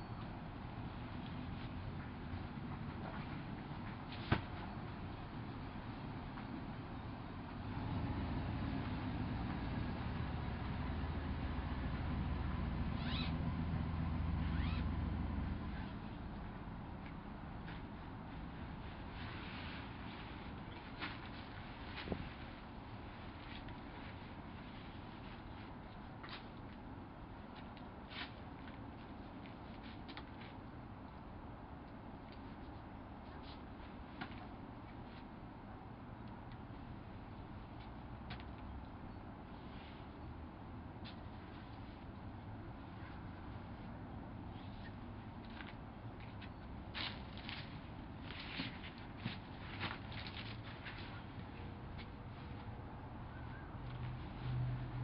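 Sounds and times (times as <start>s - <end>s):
webbing straps and carabiners clicking: 13.0s - 13.3s.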